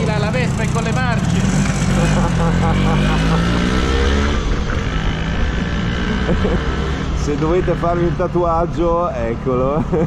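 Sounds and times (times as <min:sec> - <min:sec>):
scooter engine revving: 0:00.0 - 0:08.2
road noise: 0:00.0 - 0:10.0.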